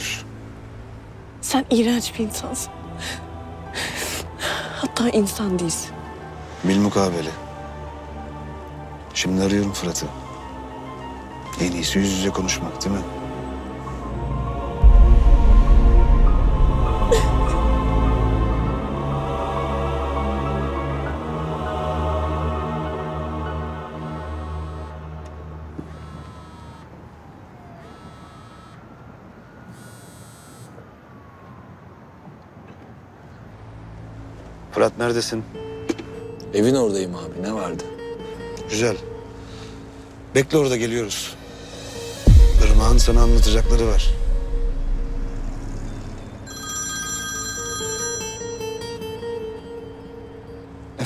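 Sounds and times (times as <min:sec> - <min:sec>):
soft background music: 0:00.0 - 0:29.7, 0:31.0 - 0:51.0
mobile phone ringtone: 0:25.9 - 0:27.0, 0:27.8 - 0:29.0, 0:29.7 - 0:30.7, 0:46.4 - 0:50.6.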